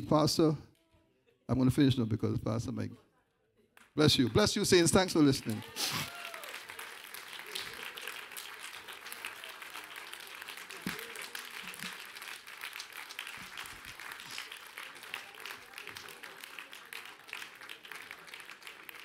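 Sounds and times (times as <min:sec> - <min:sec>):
congregation applauding: 0:04.0 - 0:19.0.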